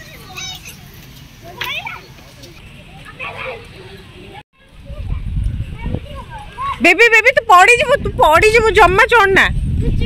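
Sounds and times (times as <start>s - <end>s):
children calling: 0.0s - 8.0s.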